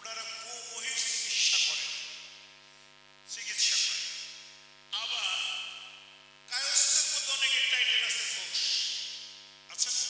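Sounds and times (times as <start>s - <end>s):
amplified voice through loudspeakers: 0.0s - 2.5s, 3.3s - 10.0s
electrical hum: 0.0s - 10.0s.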